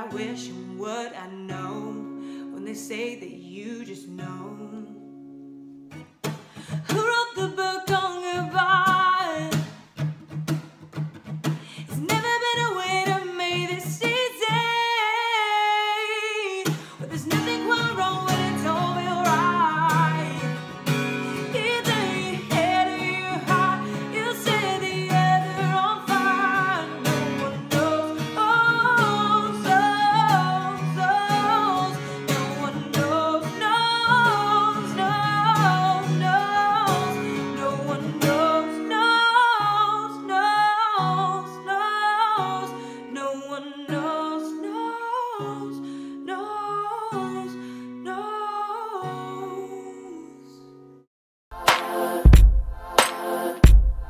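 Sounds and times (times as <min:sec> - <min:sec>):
woman singing pop ballad: 0:00.0 - 0:05.2, 0:06.6 - 0:09.7, 0:11.8 - 0:50.7
strummed acoustic guitar: 0:00.0 - 0:48.3.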